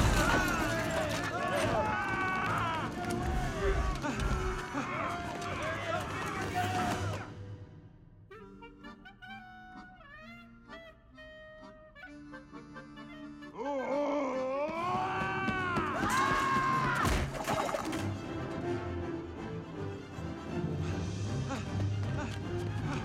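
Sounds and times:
orchestral film music: 0:00.0 - 0:23.0.

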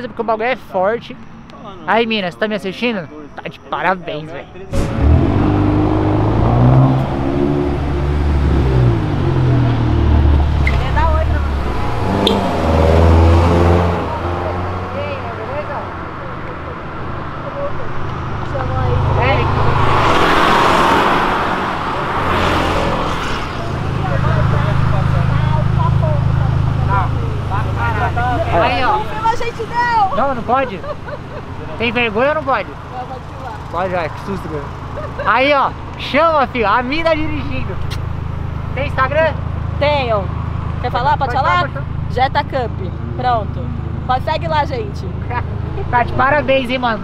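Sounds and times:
car engine accelerating hard: 0:04.7 - 0:47.0.

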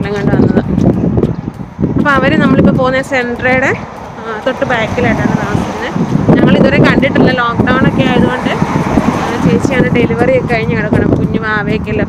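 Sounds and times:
woman talking: 0:00.0 - 0:00.8, 0:02.0 - 0:12.0
car passing on road: 0:00.0 - 0:11.9.

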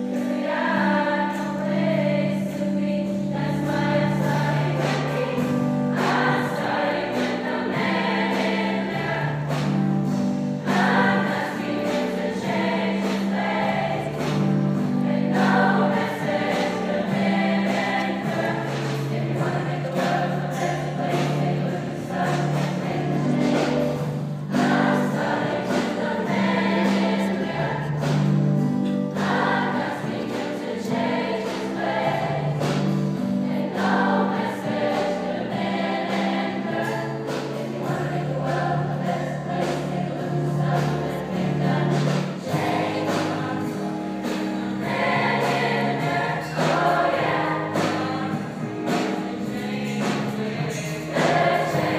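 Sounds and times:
choir singing gospel song: 0:00.0 - 0:51.9
piano accompaniment: 0:00.0 - 0:51.9.

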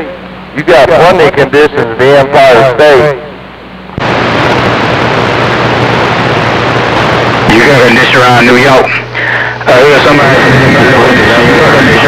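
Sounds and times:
radio static hiss: 0:00.0 - 0:12.0
low hum: 0:03.2 - 0:12.0.

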